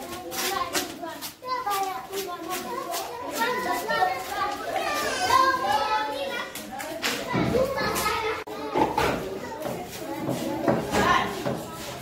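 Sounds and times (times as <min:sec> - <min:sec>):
young children talking and calling: 0:00.0 - 0:12.0.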